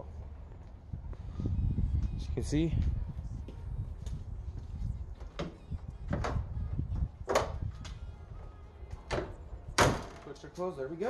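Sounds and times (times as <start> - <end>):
car hood slamming: 9.8 - 10.2.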